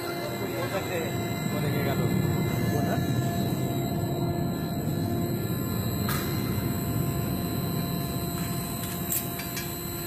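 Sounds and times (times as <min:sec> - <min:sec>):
factory machinery hum and hiss: 0:00.0 - 0:10.0.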